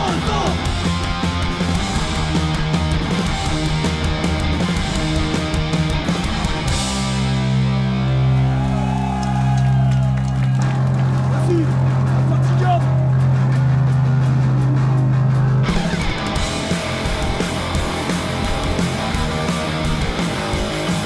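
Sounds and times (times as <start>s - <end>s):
guitar and bass chord ringing: 0.0s - 8.8s, 15.6s - 21.0s
punk rock band with drums: 0.0s - 21.0s.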